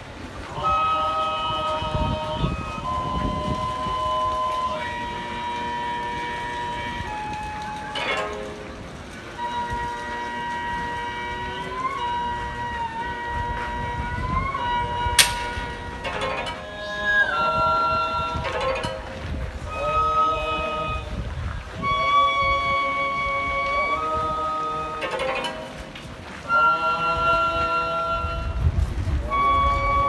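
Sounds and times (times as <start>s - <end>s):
wind instruments playing held chords: 0.0s - 30.0s
sharp click: 15.2s - 16.0s.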